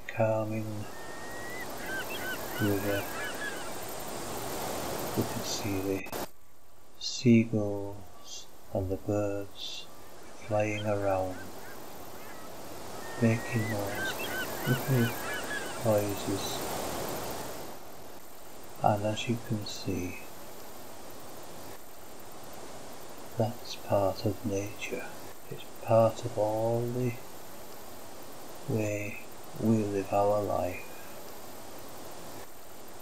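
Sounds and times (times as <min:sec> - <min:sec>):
man's voice: 0:00.0 - 0:00.9, 0:02.6 - 0:03.1, 0:05.2 - 0:06.2, 0:07.0 - 0:11.5, 0:13.2 - 0:14.1, 0:14.7 - 0:15.2, 0:15.8 - 0:16.6, 0:18.8 - 0:20.2, 0:23.4 - 0:27.2, 0:28.7 - 0:30.9
gulls calling: 0:00.0 - 0:06.3, 0:08.0 - 0:18.2
steady background hiss: 0:00.0 - 0:33.0.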